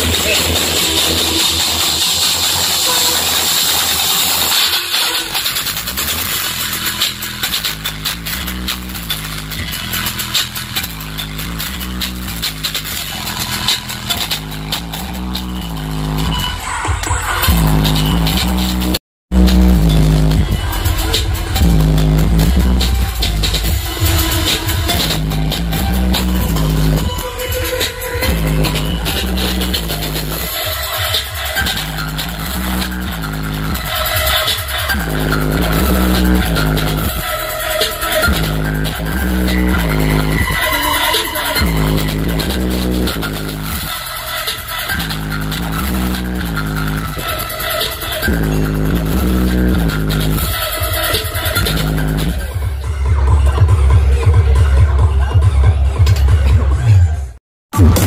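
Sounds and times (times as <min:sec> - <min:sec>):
electronic dance music with heavy bass: 0:00.0 - 0:58.0.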